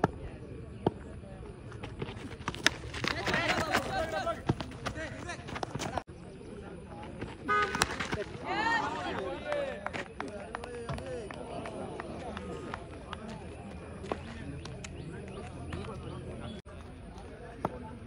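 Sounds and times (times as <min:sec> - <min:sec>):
cricket bat hitting ball: 0:07.4 - 0:08.4.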